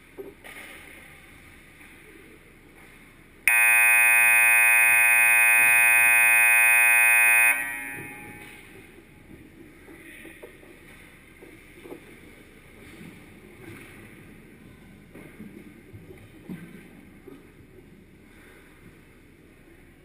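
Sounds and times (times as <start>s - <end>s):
scoreboard horn blast: 3.5s - 8.6s.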